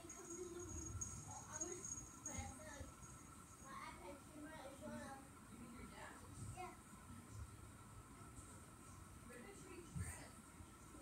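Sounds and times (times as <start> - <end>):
faint distant voices: 0.0 - 11.0.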